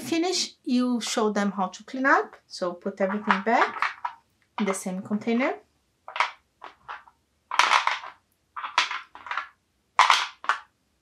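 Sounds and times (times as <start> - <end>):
toy cubes clattering into bowl: 3.0 - 5.5, 6.1 - 10.7.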